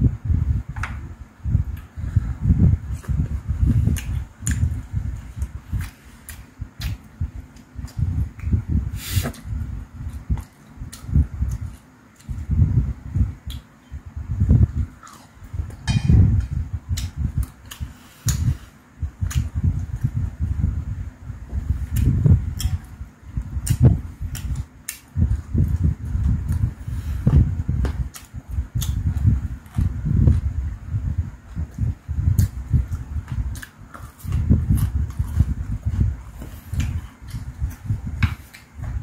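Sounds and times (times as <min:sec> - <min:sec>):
wet chewing sounds: 0:02.9 - 0:08.6, 0:19.2 - 0:20.1, 0:23.6 - 0:30.5, 0:31.6 - 0:38.9.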